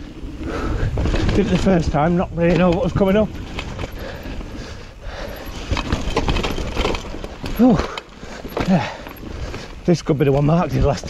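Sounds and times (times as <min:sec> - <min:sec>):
wind rumble on microphone: 0:00.0 - 0:07.8
bike knocking and rattling: 0:00.0 - 0:11.0.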